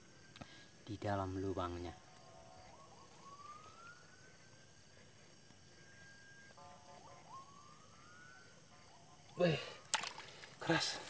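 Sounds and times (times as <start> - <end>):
faint distant rising whine: 0.0 - 9.9.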